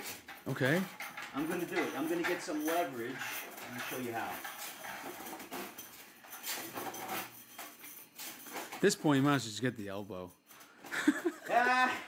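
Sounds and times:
bending coil scraping and rattling: 0.0 - 9.2.

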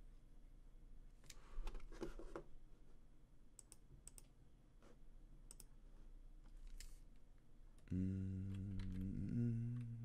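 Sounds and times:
faint sharp clicks: 5.5 - 5.7.

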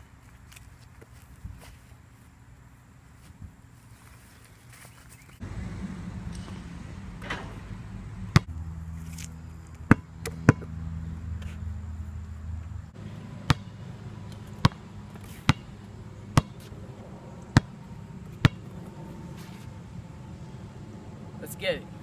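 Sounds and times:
basketball bouncing on asphalt: 8.3 - 8.6, 9.7 - 11.6, 13.0 - 16.8, 17.5 - 19.0.

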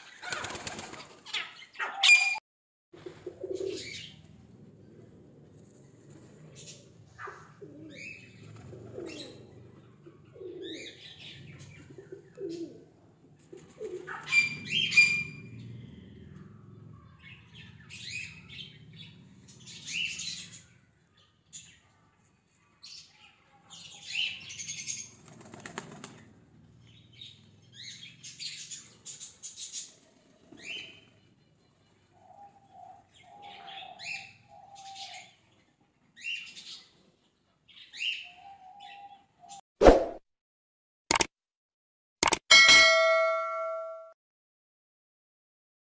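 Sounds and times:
short high bird chirps: 2.0 - 2.4
pigeons cooing: 3.0 - 5.0, 6.0 - 15.1, 32.1 - 35.4.

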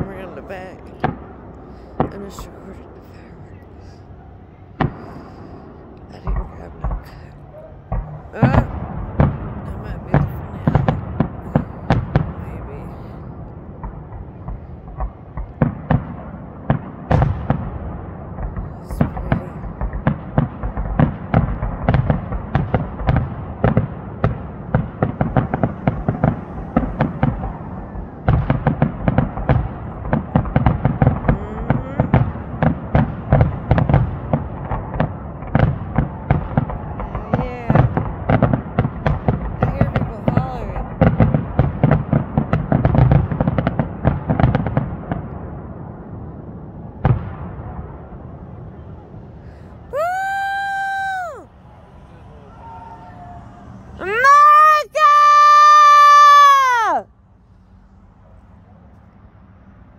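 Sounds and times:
fireworks bursting and crackling: 0.0 - 58.6.

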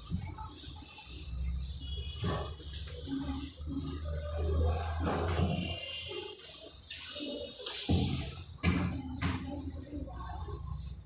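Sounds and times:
duster wiping chalkboard: 0.0 - 11.0.

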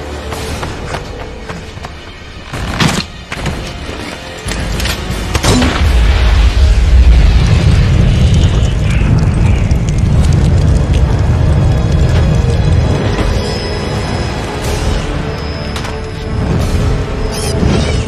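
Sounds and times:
music: 0.0 - 18.0
explosion cracks: 5.5 - 12.9
deep rumbling blast: 5.8 - 13.2.

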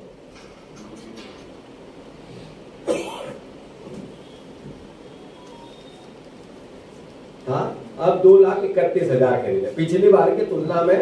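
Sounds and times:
faint room noise: 0.0 - 11.0
person coughing: 2.8 - 3.4.

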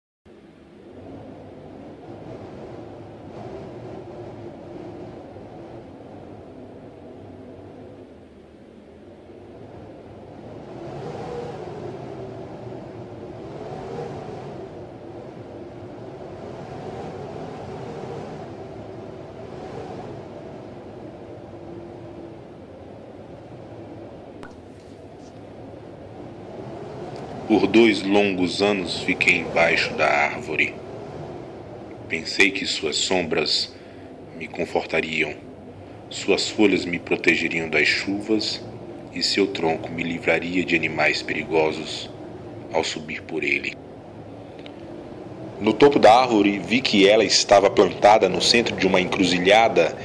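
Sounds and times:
low rumbling drone: 0.3 - 50.0.

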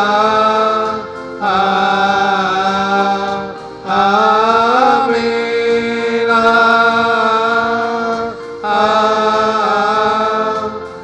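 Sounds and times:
man chanting a sung prayer: 0.0 - 10.8.

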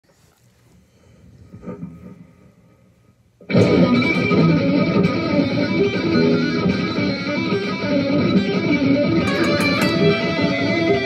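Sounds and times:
electric guitar through effects: 3.5 - 11.0.

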